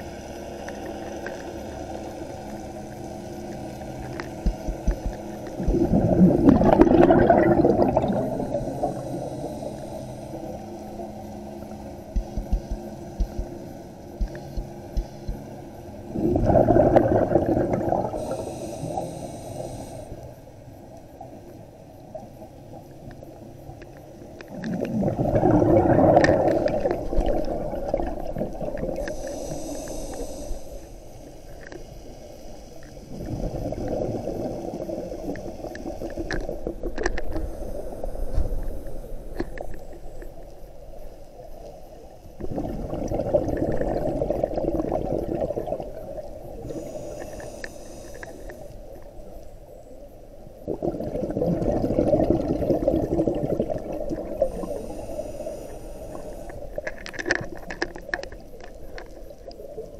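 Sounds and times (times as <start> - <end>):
soft ticks: 0.6 - 1.6, 3.4 - 5.6, 12.0 - 15.5, 20.9 - 24.7, 46.9 - 49.6
bubbling exhalations underwater: 4.8 - 9.2, 16.1 - 18.5, 24.5 - 29.6, 33.1 - 37.1, 42.4 - 46.8, 50.7 - 55.0
high hiss of inhalation: 8.1 - 11.0, 17.8 - 20.4, 28.9 - 39.6, 46.5 - 49.0, 53.8 - 56.8.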